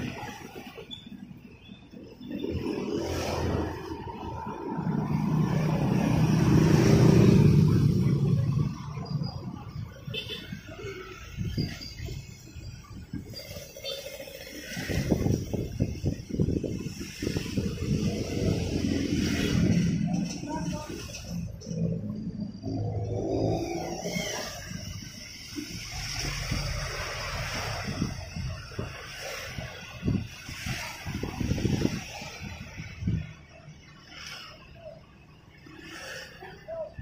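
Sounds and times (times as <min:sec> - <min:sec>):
traffic rumble: 0:00.0 - 0:37.0
vehicle engine passing by: 0:02.4 - 0:09.7.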